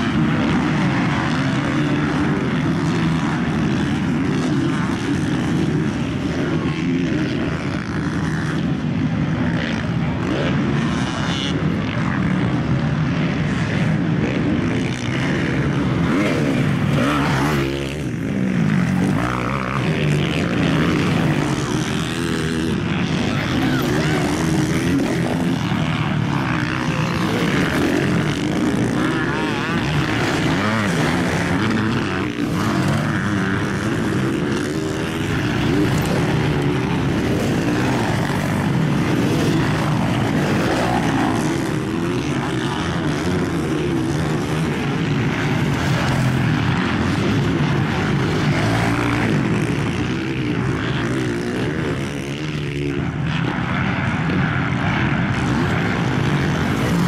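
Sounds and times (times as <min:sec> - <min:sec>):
motocross bike engines revving: 0:00.0 - 0:57.0.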